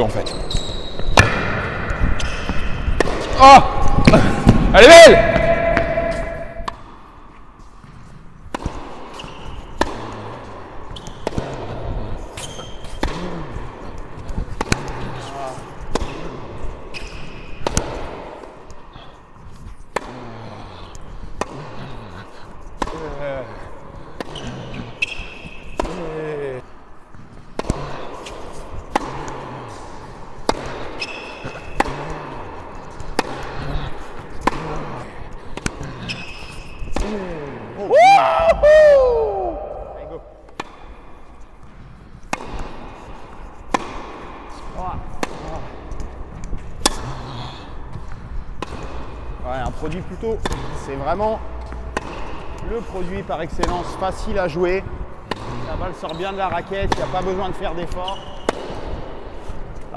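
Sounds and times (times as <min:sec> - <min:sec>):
tennis ball bouncing on court: 0:01.0 - 0:07.0, 0:08.5 - 0:13.4, 0:16.9 - 0:18.4, 0:56.8 - 0:59.5
racket hitting tennis ball: 0:01.0 - 0:07.1, 0:08.5 - 0:18.8, 0:21.3 - 0:23.2, 0:27.4 - 0:37.5, 0:39.7 - 0:47.1, 0:48.0 - 0:49.8, 0:50.4 - 0:50.8, 0:51.6 - 0:52.8, 0:56.8 - 0:59.9.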